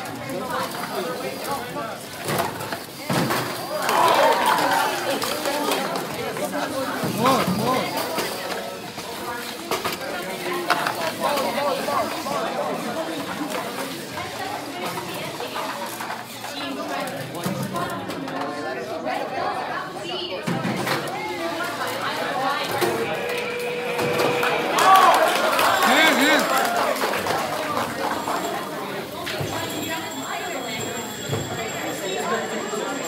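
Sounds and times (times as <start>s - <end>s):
indistinct chatter of many voices: 0.0s - 33.0s.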